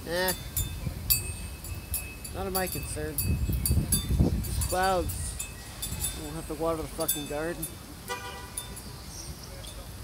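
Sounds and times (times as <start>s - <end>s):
street background rumble: 0.0s - 10.0s
car horn toot: 8.1s - 8.7s.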